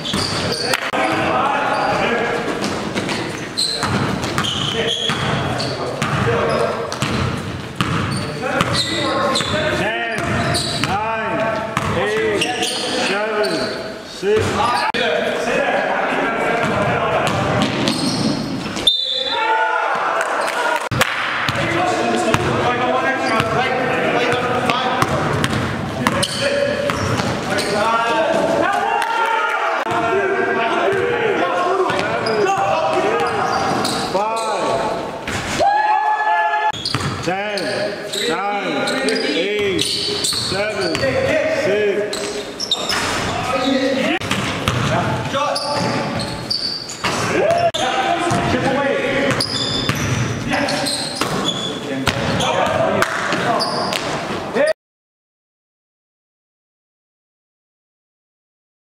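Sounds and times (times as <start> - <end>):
sneakers squeaking: 0.0 - 15.1, 16.6 - 19.4, 21.4 - 29.1, 30.7 - 35.6, 36.7 - 54.7
basketball dribbling on gym floor: 25.0 - 26.2, 44.3 - 45.0.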